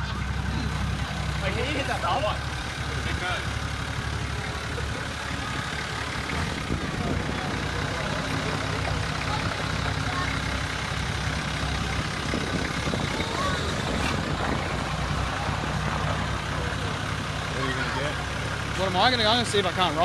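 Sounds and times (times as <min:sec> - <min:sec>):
faint crowd chatter: 0:00.0 - 0:20.0
truck engine idling: 0:00.0 - 0:20.0.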